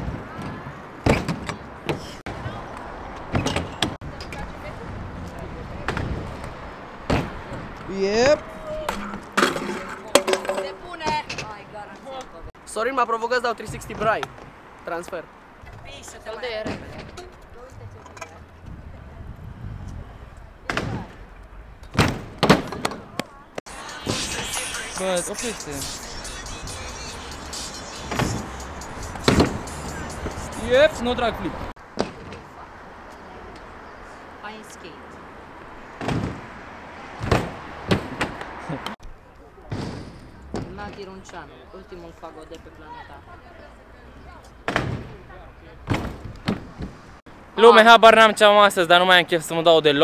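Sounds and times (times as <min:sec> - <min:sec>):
scooter landing bangs: 0:00.0 - 0:02.2, 0:07.0 - 0:11.6, 0:21.9 - 0:23.3, 0:28.1 - 0:29.7, 0:35.9 - 0:38.5, 0:39.7 - 0:41.0, 0:44.6 - 0:45.2, 0:45.8 - 0:47.1
scooter clacking on ground: 0:08.8 - 0:12.1
scooter landing on concrete: 0:37.2 - 0:38.5.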